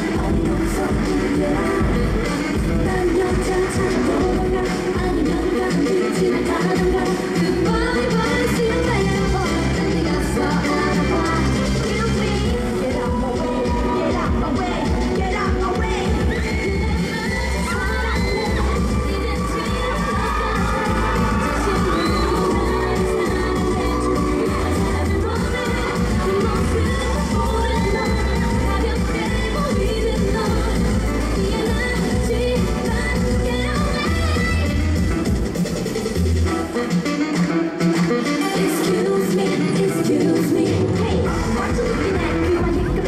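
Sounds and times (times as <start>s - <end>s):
dance track over loudspeakers: 0.0s - 43.0s
audience cheering and shouting: 7.7s - 35.2s.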